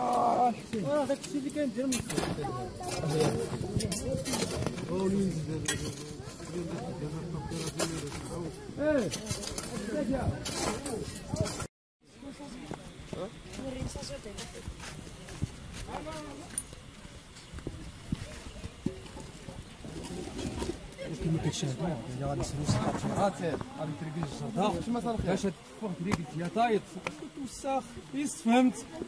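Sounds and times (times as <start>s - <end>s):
men chattering: 0.0s - 14.3s, 21.0s - 29.0s
people talking: 0.0s - 29.0s.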